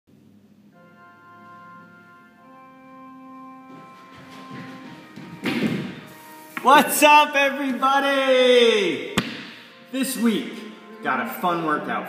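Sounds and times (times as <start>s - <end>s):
intro music held notes: 0.1s - 12.0s
loud thud: 9.2s - 9.6s.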